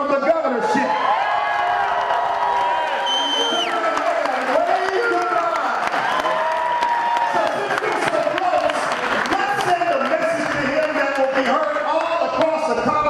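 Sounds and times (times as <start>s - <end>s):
audience cheering and shouting: 0.0s - 13.0s
audience clapping: 1.3s - 13.0s.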